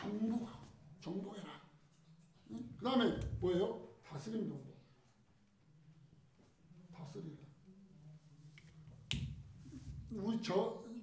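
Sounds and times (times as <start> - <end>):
man speaking: 10.1 - 11.0.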